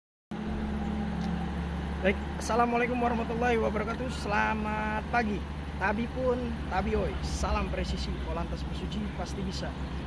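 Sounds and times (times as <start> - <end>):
vehicle engine humming: 0.3 - 10.0.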